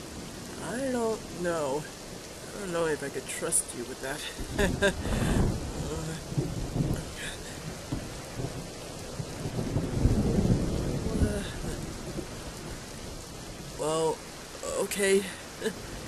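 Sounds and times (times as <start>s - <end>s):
steady rain: 0.0s - 16.0s
thunder rolling: 4.2s - 13.8s.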